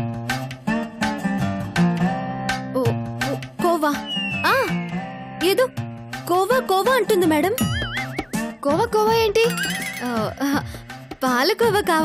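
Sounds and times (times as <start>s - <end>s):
falling whistle-like tone: 4.0s - 5.1s.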